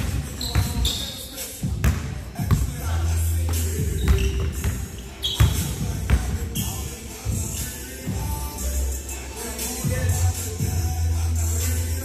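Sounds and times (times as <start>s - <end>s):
shoe squeaks: 0.1s - 1.6s, 3.5s - 7.0s.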